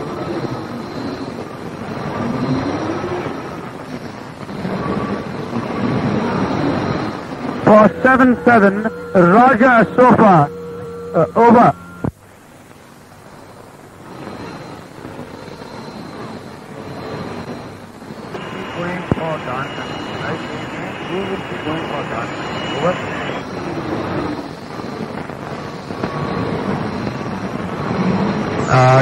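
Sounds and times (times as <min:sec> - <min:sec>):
radio hiss and static: 0:00.0 - 0:29.0
steady high whistle: 0:06.3 - 0:12.1, 0:14.2 - 0:27.2.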